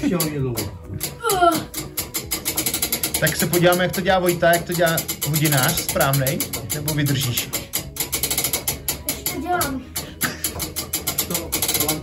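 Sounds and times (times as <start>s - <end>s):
ratchet pawl clicking: 0.0s - 12.0s.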